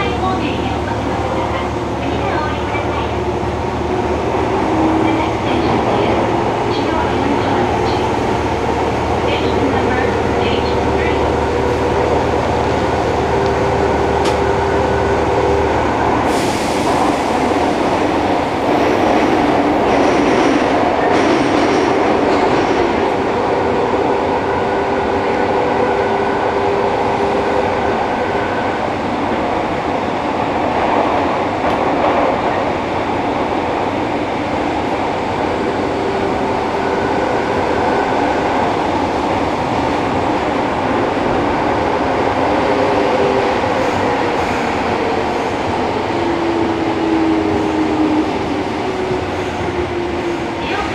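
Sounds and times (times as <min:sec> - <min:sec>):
subway train wheels roaring: 0:00.0 - 0:50.9.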